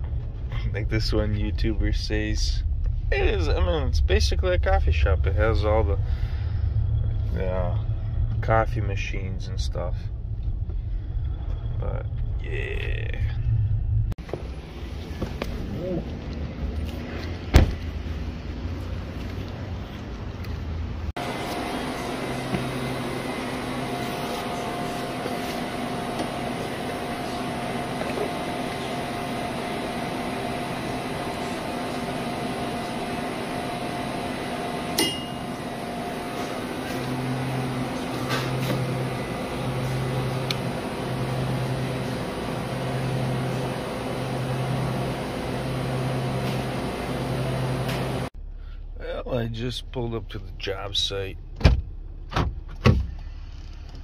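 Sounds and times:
pulsing low hum: 0:00.0 - 0:19.2, 0:20.9 - 0:52.6
hum of shop appliances: 0:00.0 - 0:54.0
outdoor rumble: 0:00.0 - 0:54.0.

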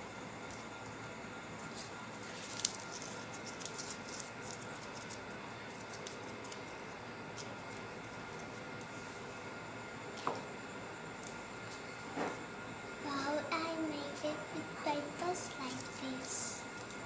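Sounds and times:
steady background hiss: 0:00.0 - 0:17.0
paper crumpling: 0:01.6 - 0:06.7.

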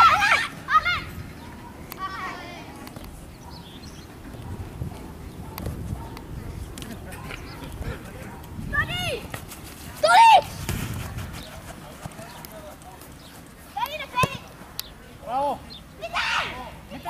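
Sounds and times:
children shouting: 0:00.0 - 0:02.8, 0:16.0 - 0:16.8
ball being kicked: 0:14.1 - 0:14.4.

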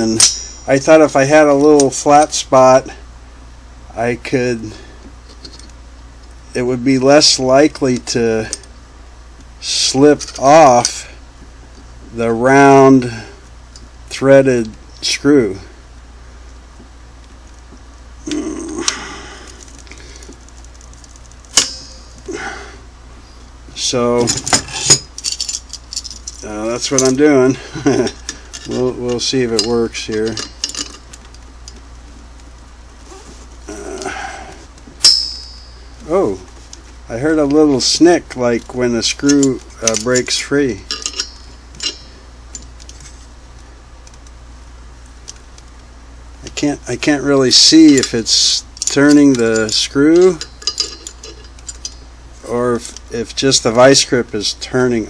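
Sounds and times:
steady low hum: 0:00.0 - 0:55.0
sharp metallic click: 0:00.1 - 0:00.7, 0:21.5 - 0:22.3.

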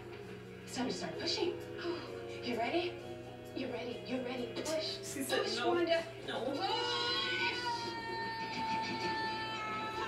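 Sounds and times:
woman screaming: 0:06.6 - 0:10.0.

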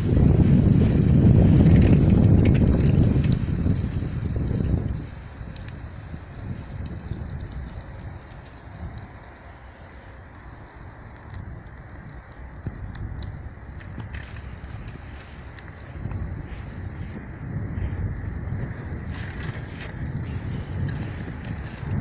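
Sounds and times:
wind buffeting microphone: 0:00.0 - 0:22.0
faint ticks: 0:05.4 - 0:17.9.

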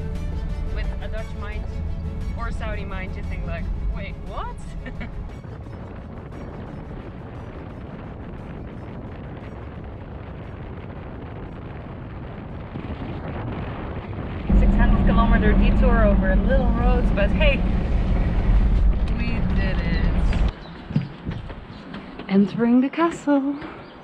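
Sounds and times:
low drone: 0:00.0 - 0:12.6, 0:14.2 - 0:20.6
loud low rumble: 0:00.0 - 0:20.6
wind and road noise: 0:00.0 - 0:24.0.

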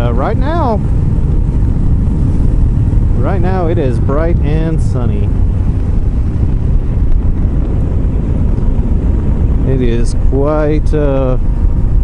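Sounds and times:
motorcycle engine: 0:00.0 - 0:12.0
road noise: 0:00.0 - 0:12.0
wind buffeting microphone: 0:00.0 - 0:12.0.

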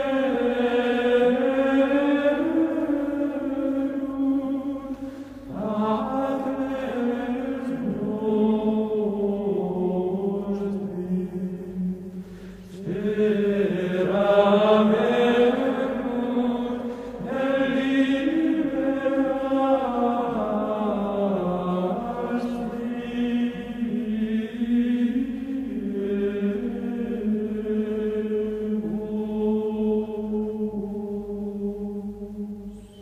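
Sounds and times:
slow vocal chant: 0:00.0 - 0:33.0.

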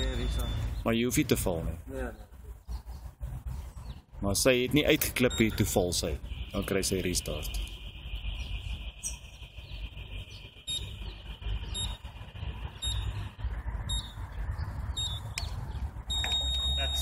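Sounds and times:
long beep: 0:00.0 - 0:00.7, 0:05.3 - 0:05.8, 0:10.6 - 0:11.0, 0:16.1 - 0:17.0
countdown timer short beeps: 0:16.1 - 0:17.0.

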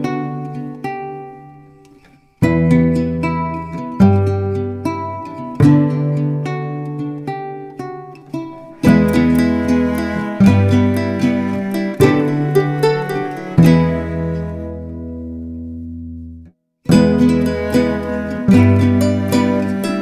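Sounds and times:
plucked acoustic guitar music: 0:00.0 - 0:20.0.

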